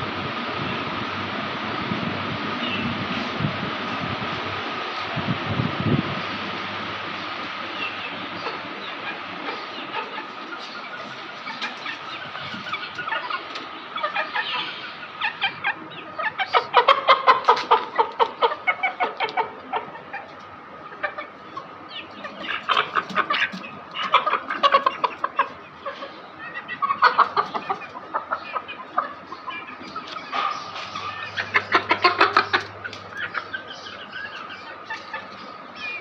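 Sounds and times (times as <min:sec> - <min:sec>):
chickens clucking: 0:00.0 - 0:36.0
steady background hum: 0:00.0 - 0:36.0.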